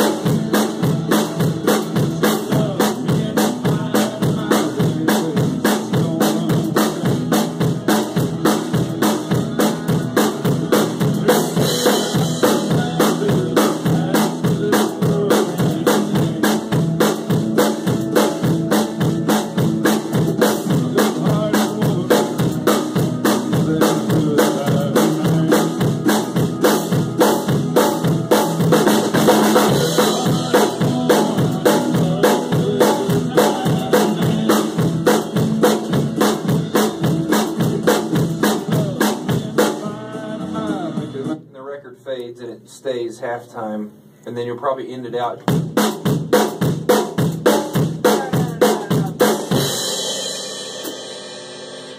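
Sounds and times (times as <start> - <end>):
drum kit playing: 0.0 - 41.6, 45.0 - 51.9
recorded backing music: 0.0 - 51.9.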